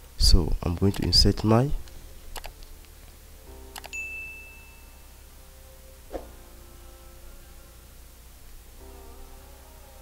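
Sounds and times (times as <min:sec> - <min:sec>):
faint low hum: 0:00.0 - 0:10.0
bright bell ding: 0:03.9 - 0:05.0.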